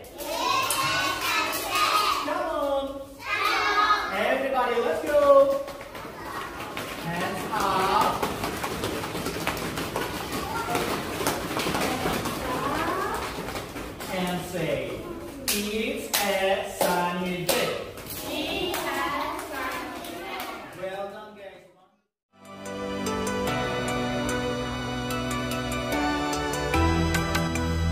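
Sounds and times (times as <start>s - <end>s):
young children talking and calling: 0.0s - 8.3s, 9.1s - 15.9s, 18.0s - 20.8s.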